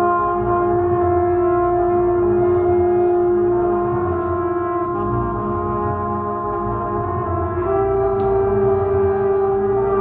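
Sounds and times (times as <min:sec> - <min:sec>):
drone of looped sustained tones: 0:00.0 - 0:10.0
trumpet holding long note: 0:00.0 - 0:10.0.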